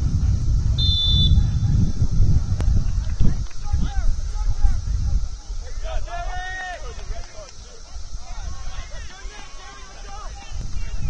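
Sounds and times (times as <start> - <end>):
wind rumbling on microphone: 0.0 - 11.0
referee's whistle blast: 0.8 - 1.6.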